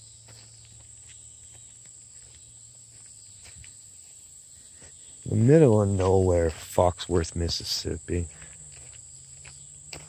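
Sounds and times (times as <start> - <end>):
footsteps through grass: 0.0 - 10.0
high-pitched insect chorus: 0.0 - 10.0.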